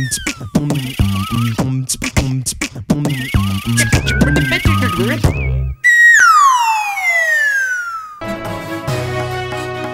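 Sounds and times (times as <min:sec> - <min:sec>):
descending whistle: 0:00.0 - 0:01.6, 0:03.1 - 0:08.3.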